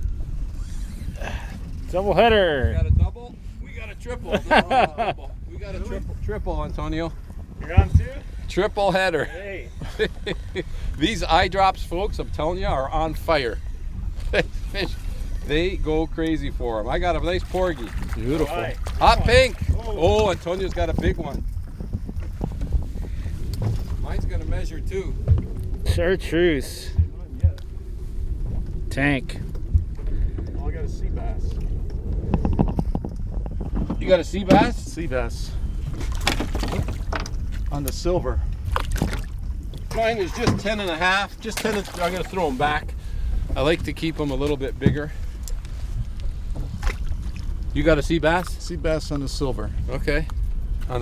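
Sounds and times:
wind rumbling on microphone: 0.0s - 51.0s.

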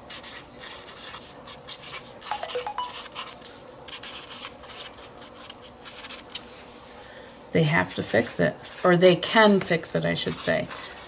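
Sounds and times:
pen scratching on paper: 0.1s - 6.2s, 10.2s - 11.0s.

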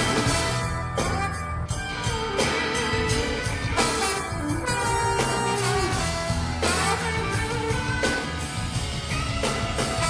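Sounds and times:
drums: 0.0s - 10.0s
electric guitar: 0.0s - 10.0s.

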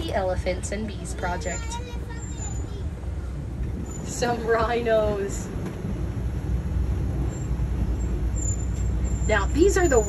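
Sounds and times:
truck engine rumble: 0.0s - 10.0s.

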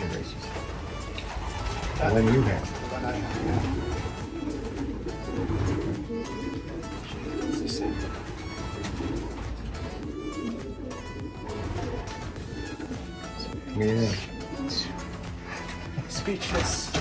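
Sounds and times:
pigeons cooing: 0.0s - 17.0s.

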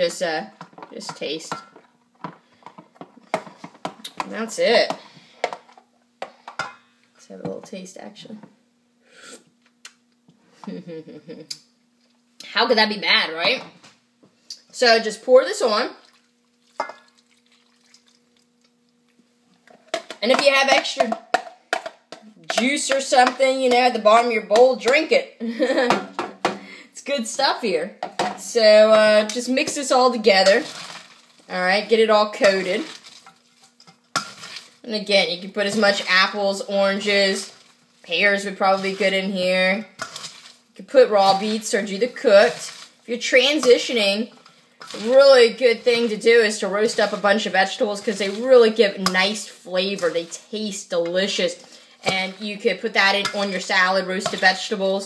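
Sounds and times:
tongs tossing wet salad: 29.3s - 34.8s, 35.4s - 39.4s, 40.0s - 40.6s, 41.2s - 54.6s.

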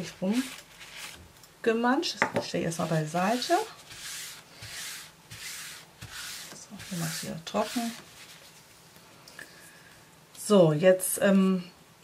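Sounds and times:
hand rubbing across paper: 2.8s - 8.7s.

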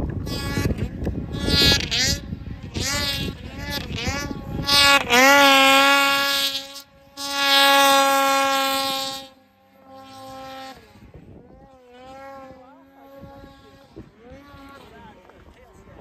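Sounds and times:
snowmobile engine revving: 0.0s - 16.0s.

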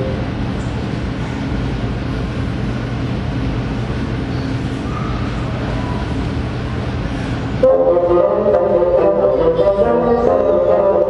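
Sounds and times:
bassoons playing held note: 7.6s - 11.0s.

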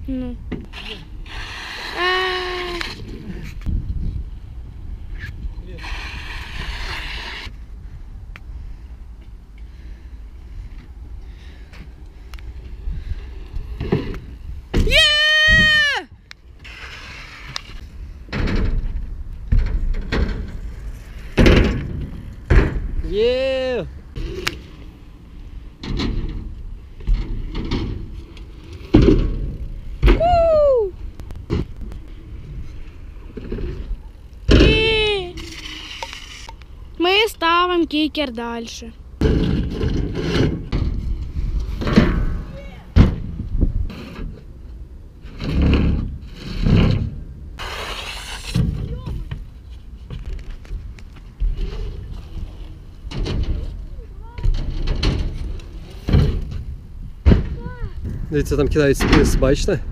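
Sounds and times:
wind on microphone: 1.2s - 8.8s, 12.6s - 14.9s, 40.6s - 44.2s
bmx wheels knocking and clattering: 13.3s - 15.8s, 18.0s - 23.1s, 25.7s - 30.4s, 31.2s - 32.1s, 33.2s - 36.1s, 39.2s - 44.4s, 45.2s - 59.9s
person shouting high-pitched: 14.8s - 16.1s.

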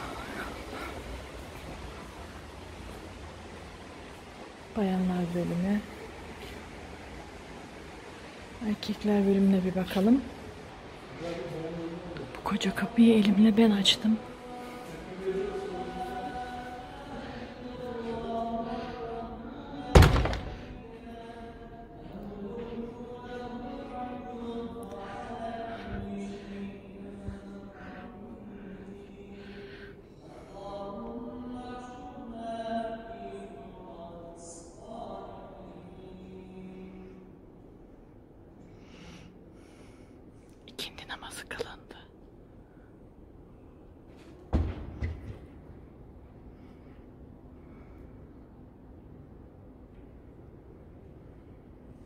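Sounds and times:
soft whispering: 0.0s - 3.1s, 11.0s - 19.7s, 20.7s - 31.0s, 38.6s - 43.0s
door shutting with heavy thud: 19.9s - 20.8s, 44.5s - 45.4s
heavy low thump: 20.0s - 20.8s.

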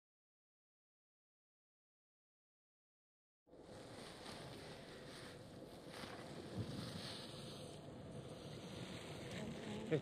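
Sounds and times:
wind buffeting microphone: 5.8s - 9.7s.

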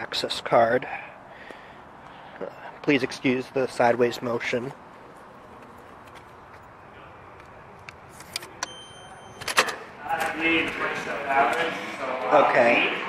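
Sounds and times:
high lock beep: 8.6s - 9.8s.

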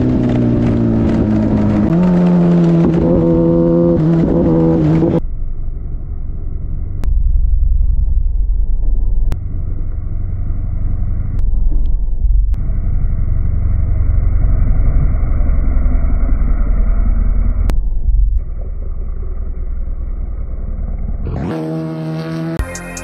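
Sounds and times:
muffled motorcycle engine rumble: 0.0s - 22.7s.

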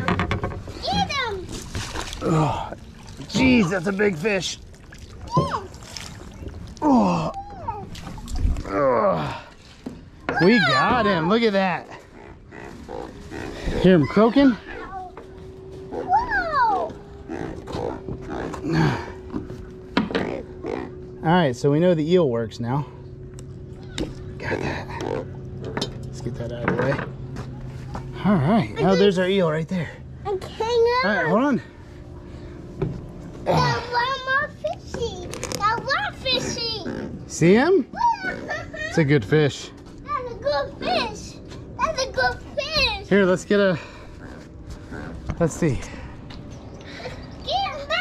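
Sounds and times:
faint hum: 0.0s - 48.0s
catfish croaking grunts: 10.3s - 14.9s, 17.1s - 19.3s, 20.0s - 21.3s, 24.2s - 25.7s, 36.3s - 37.3s, 43.8s - 46.3s.

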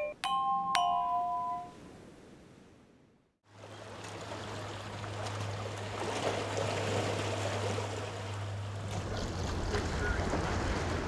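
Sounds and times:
chiming mallet percussion notes: 0.0s - 1.8s
waves lapping against rocks: 3.5s - 11.0s.

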